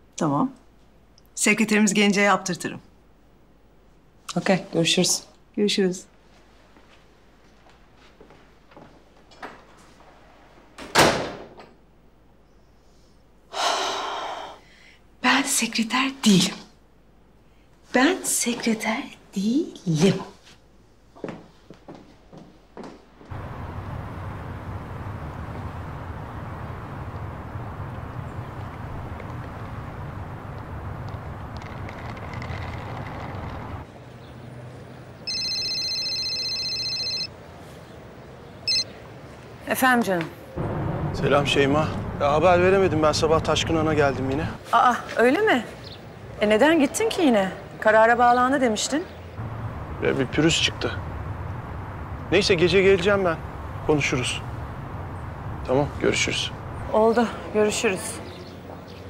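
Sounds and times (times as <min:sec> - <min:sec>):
mobile phone electronic ringing: 0:35.2 - 0:37.3, 0:38.7 - 0:38.9.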